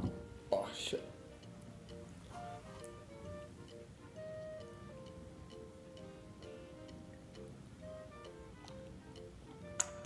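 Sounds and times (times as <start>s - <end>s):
quiet music with ticking beat: 0.0s - 10.0s.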